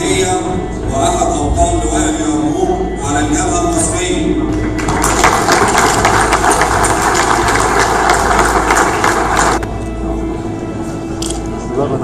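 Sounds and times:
audience clapping: 0:04.5 - 0:09.6.

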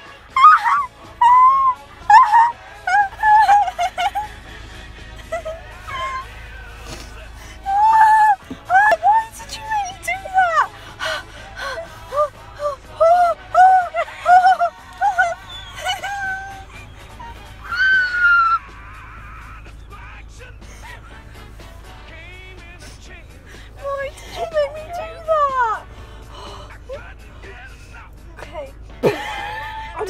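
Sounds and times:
girl whimpering and squealing: 0:00.3 - 0:04.2, 0:05.2 - 0:06.3, 0:07.6 - 0:10.7, 0:11.6 - 0:16.6, 0:17.2 - 0:18.8, 0:23.8 - 0:25.8.

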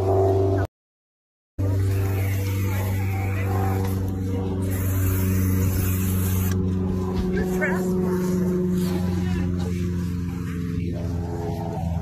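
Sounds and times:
engine running: 0:00.0 - 0:00.7, 0:01.6 - 0:12.0.

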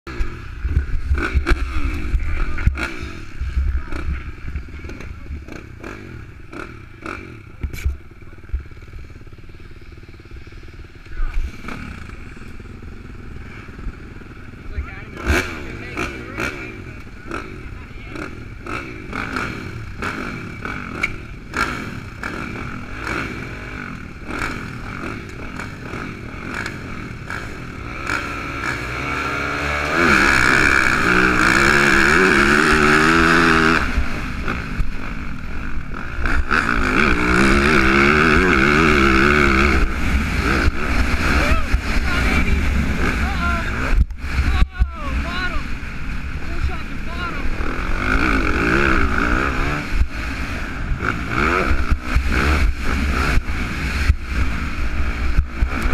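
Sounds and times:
motocross bike engines revving: 0:00.1 - 0:55.9.

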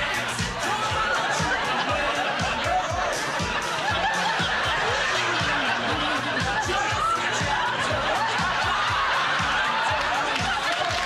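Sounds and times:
rock music: 0:00.0 - 0:11.0
studio audience laughing: 0:00.0 - 0:11.0.

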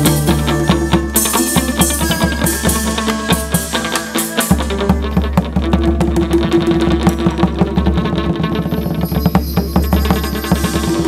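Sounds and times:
drum strokes: 0:00.0 - 0:11.0
plucked strings: 0:00.0 - 0:11.0.

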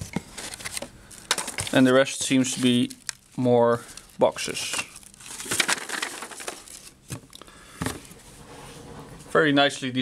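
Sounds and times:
paper rustling: 0:00.2 - 0:07.2.

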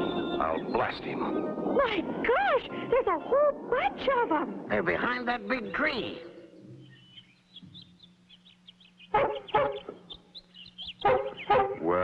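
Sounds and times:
low steady hum: 0:00.0 - 0:12.0
cartoon birds chirping: 0:06.1 - 0:12.0.

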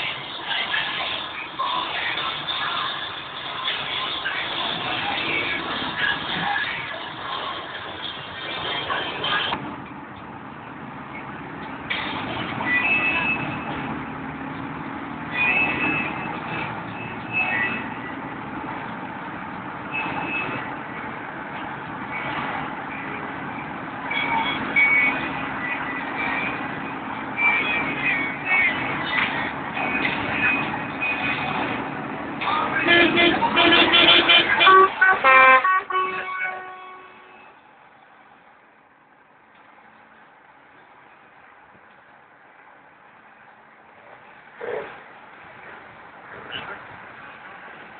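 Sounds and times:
trucks running: 0:00.0 - 0:47.9
truck horn toots: 0:32.7 - 0:37.6.

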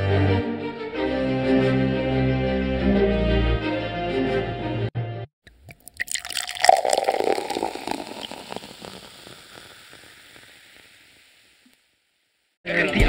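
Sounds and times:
crackling splashy noise: 0:05.5 - 0:12.1.

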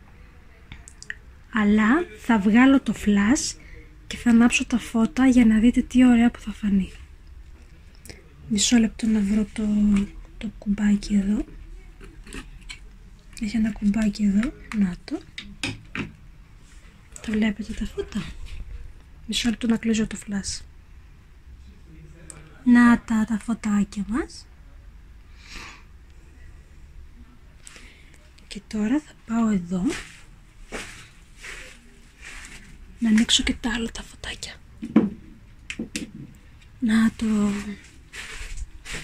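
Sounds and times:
soft swishes of movement: 0:29.8 - 0:33.1, 0:36.6 - 0:39.0.

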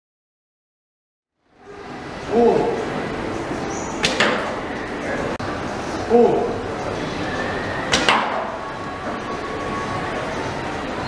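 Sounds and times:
steady background noise: 0:01.4 - 0:11.0
arrow striking: 0:04.0 - 0:04.6, 0:07.9 - 0:08.5.

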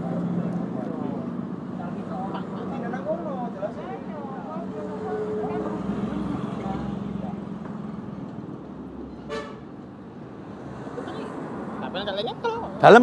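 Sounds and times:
vehicle engine humming: 0:00.0 - 0:13.0.

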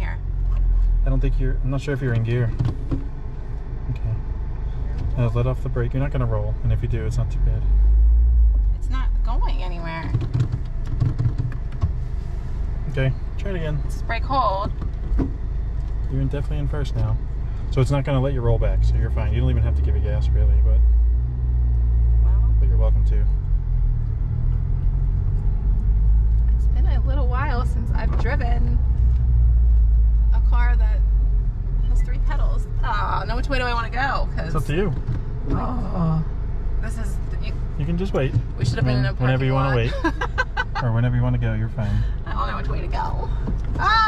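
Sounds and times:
car engine idling: 0:00.0 - 0:44.0.

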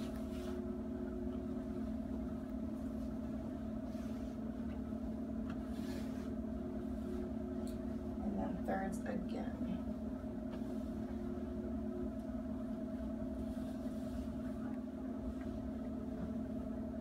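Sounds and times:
low mechanical hum: 0:00.0 - 0:17.0.

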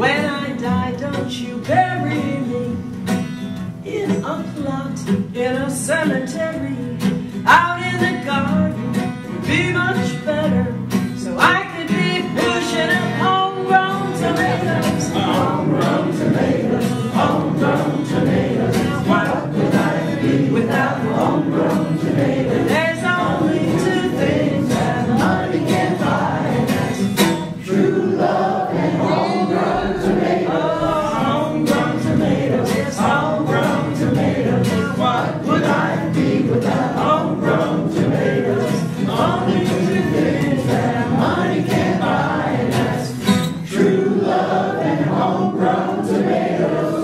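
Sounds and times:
choir-like voices singing: 0:00.0 - 0:02.7, 0:11.2 - 0:47.0.

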